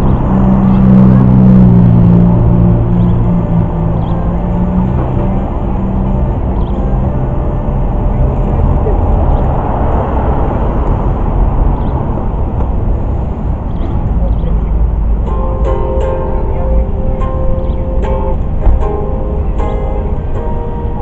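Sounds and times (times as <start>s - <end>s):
electric guitar through amplifier: 0.0s - 21.0s.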